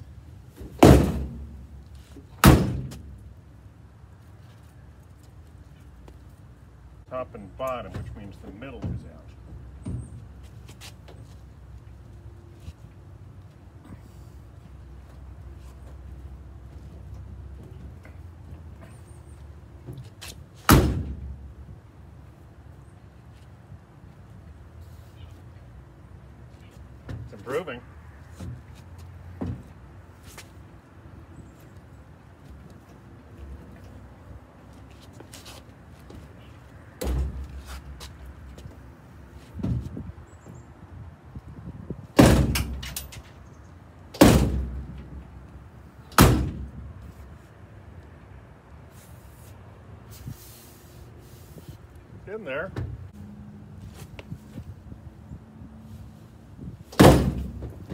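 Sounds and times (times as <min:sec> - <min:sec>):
truck door banging: 0:00.6 - 0:01.8, 0:02.4 - 0:03.2, 0:20.6 - 0:21.4, 0:29.4 - 0:29.7, 0:37.0 - 0:37.6, 0:42.2 - 0:43.3, 0:44.2 - 0:45.2, 0:46.2 - 0:46.9, 0:56.9 - 0:57.9.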